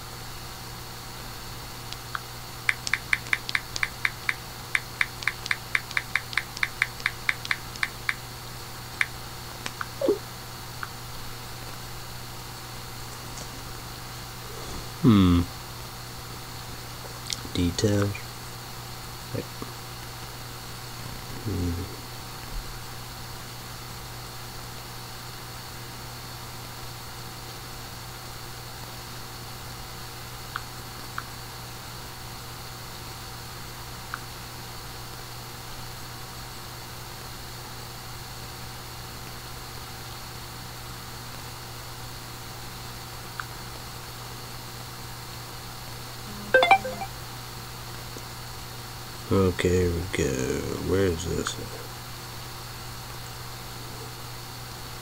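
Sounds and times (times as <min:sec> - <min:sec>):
low electrical hum with hiss: 0:00.0 - 0:55.0
short mumble: 0:15.0 - 0:15.5.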